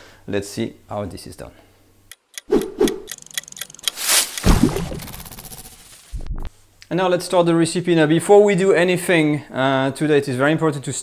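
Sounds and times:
run of clicks: 2.1 - 4.5
fast fine ticking: 2.1 - 5.9.

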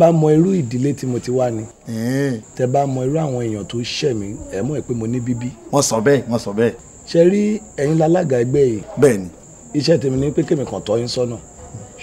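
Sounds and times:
man speaking: 0.0 - 12.0
thin high-pitched whine: 0.0 - 12.0.

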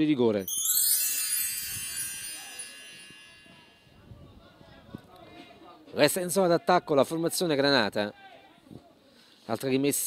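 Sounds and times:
bright shimmering chime: 0.4 - 4.1.

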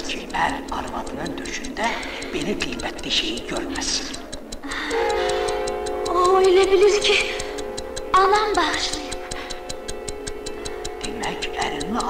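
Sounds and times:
clock ticking fast: 0.0 - 12.0
held musical drone: 0.0 - 12.0.

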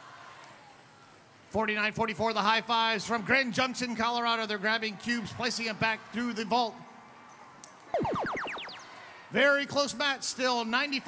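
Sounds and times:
electronic falling pitch sweeps: 8.0 - 9.1.

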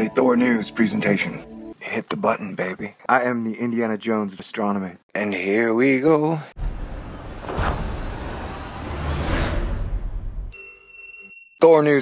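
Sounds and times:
deep rumble: 6.6 - 10.5
rushing whooshes: 6.6 - 10.5.

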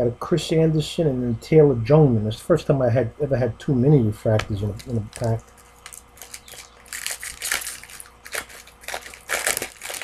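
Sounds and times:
card pack wrapper crinkling: 4.7 - 10.0.

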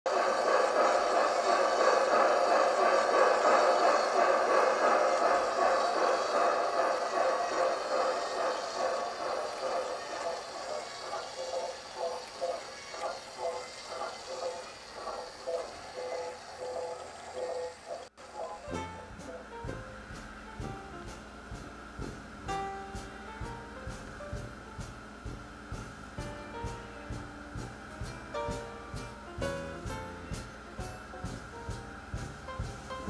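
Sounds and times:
steam engine rush and chuffs: 0.0 - 33.0.

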